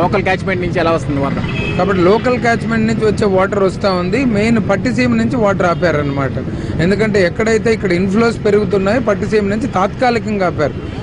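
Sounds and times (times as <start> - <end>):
man speaking: 0.0 - 10.9.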